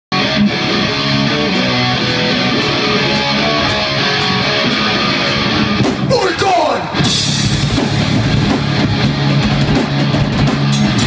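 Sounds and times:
electric guitar: 0.1 - 11.0
live band playing: 0.2 - 11.0.

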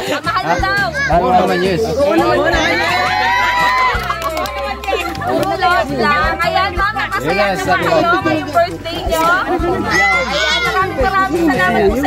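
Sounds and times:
people talking at once: 0.0 - 12.0
children's voices: 0.1 - 2.8, 8.2 - 12.0.

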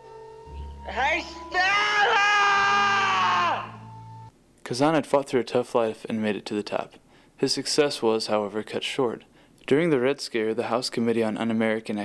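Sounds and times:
man bellowing: 1.5 - 3.9.

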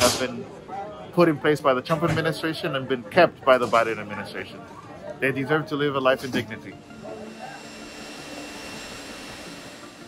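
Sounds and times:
faint high whine: 5.8 - 10.0.

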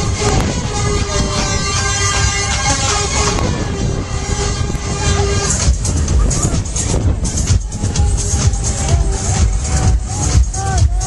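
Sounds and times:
fairground ride music: 0.0 - 11.0
thrill ride rushing rumble: 0.0 - 11.0.

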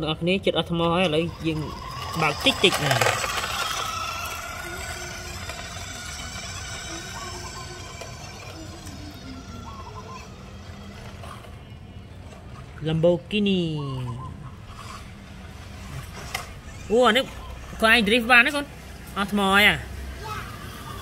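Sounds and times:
person speaking: 0.4 - 5.8
toy car electric motor whining: 0.7 - 12.8, 14.1 - 21.0.

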